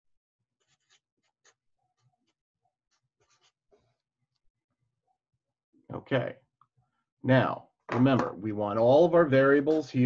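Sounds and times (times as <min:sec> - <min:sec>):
marker scratching on paper: 0:00.6 - 0:01.6, 0:02.9 - 0:03.8.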